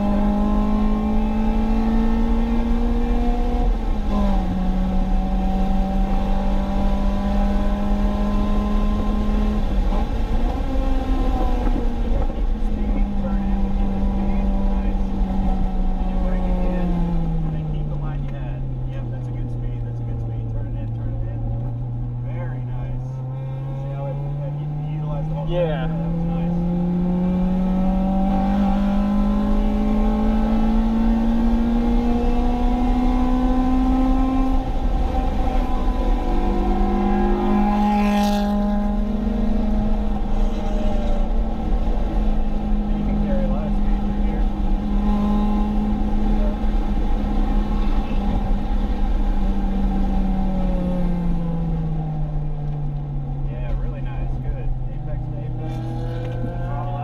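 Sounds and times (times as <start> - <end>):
car engine revving hard: 0.0 - 57.0.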